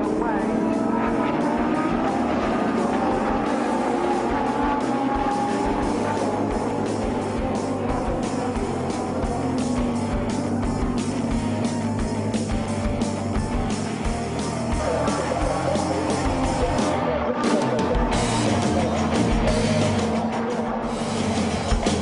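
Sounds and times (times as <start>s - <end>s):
race car engines: 0.0s - 22.0s
race car passing by: 0.0s - 22.0s
rock music with steady beat: 0.0s - 22.0s.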